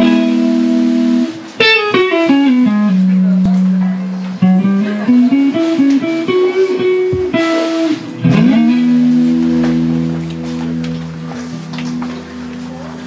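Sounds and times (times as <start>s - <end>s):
electric guitar and bass notes: 0.0s - 13.0s.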